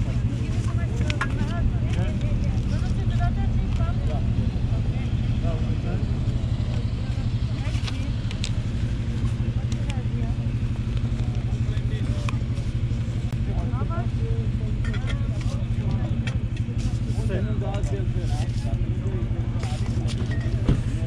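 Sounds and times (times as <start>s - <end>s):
background chatter: 0.0s - 21.0s
low engine hum: 0.0s - 21.0s.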